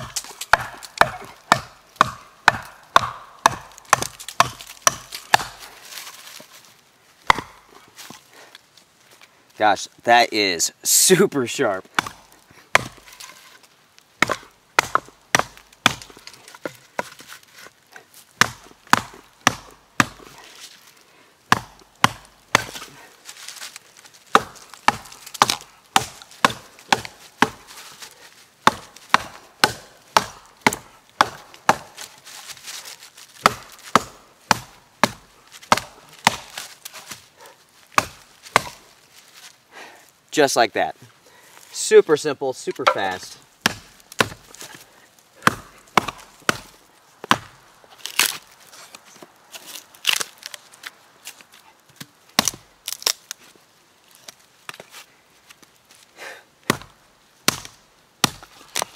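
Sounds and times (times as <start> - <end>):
hatchet chopping wood: 0.0 - 6.1, 7.2 - 7.7, 11.8 - 13.4, 14.2 - 17.4, 18.4 - 20.4, 21.5 - 23.0, 24.3 - 32.2, 33.4 - 37.2, 38.0 - 38.8, 42.7 - 44.8, 45.4 - 48.4, 52.0 - 53.2, 56.6 - 58.9.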